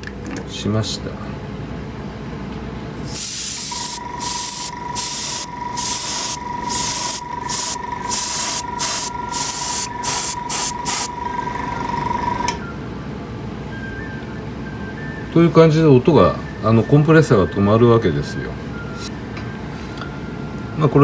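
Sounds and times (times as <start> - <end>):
airbrush hissing bursts: 3.0 - 11.2
compressor running: 3.0 - 12.7.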